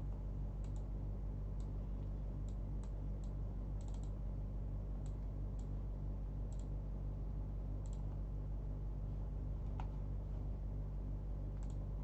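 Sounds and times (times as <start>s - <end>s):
low electrical hum: 0.0s - 12.0s
computer mouse clicks: 0.6s - 0.9s, 2.4s - 4.2s, 5.0s - 5.8s, 6.5s - 6.7s, 7.8s - 8.2s, 11.5s - 11.9s.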